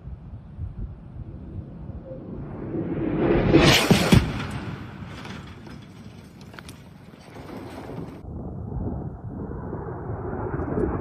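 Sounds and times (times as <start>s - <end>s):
wind buffeting microphone: 0.0s - 3.5s, 4.2s - 11.0s.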